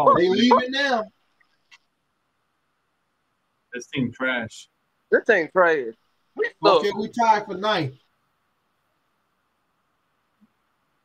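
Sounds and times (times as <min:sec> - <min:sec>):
man speaking: 0:00.0 - 0:01.1, 0:03.8 - 0:08.0
faint background hiss: 0:00.0 - 0:11.0.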